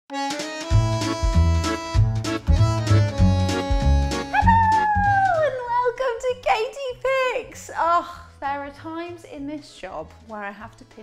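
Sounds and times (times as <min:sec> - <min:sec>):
upbeat jingle with bass beat: 0:00.2 - 0:05.5.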